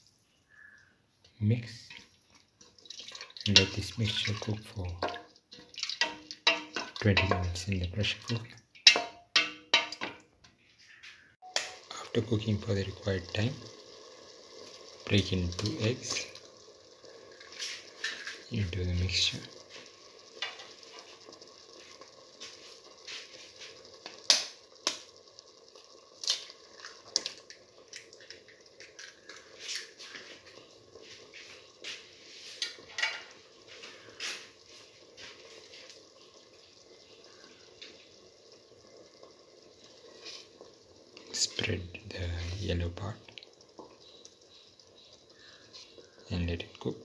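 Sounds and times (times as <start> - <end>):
stew simmering with soft pops: 0.0 - 47.0.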